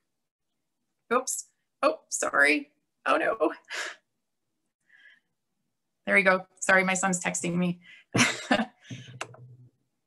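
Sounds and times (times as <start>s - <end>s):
woman laughing: 8.2s - 8.9s.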